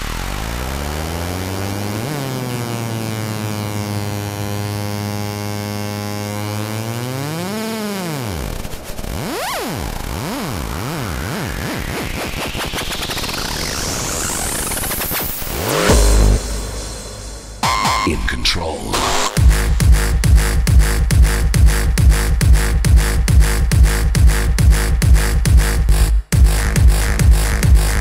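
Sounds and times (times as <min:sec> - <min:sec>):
noise riser climbing: 0:00.0 - 0:04.9, 0:07.0 - 0:26.0
synth pitch swoops: 0:08.4 - 0:18.2
sliding synth note: 0:13.6 - 0:18.2.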